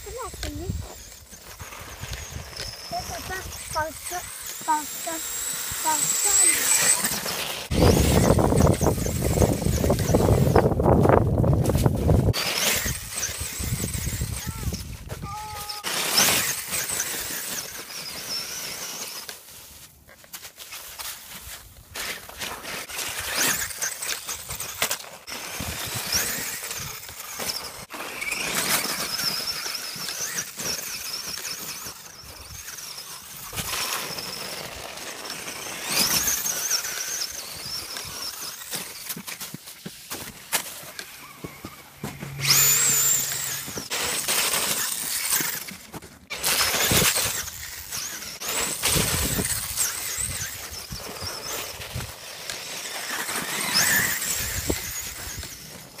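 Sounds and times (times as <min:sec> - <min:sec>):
electric motor and gear whine: 0:00.0 - 0:19.3, 0:22.7 - 0:39.5, 0:40.1 - 0:56.0
tires churning through snow: 0:00.0 - 0:56.0.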